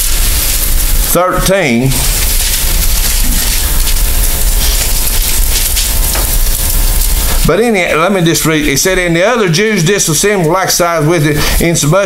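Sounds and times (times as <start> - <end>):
faint steady hum: 0.0 - 12.0
recording hiss and static: 0.0 - 12.0.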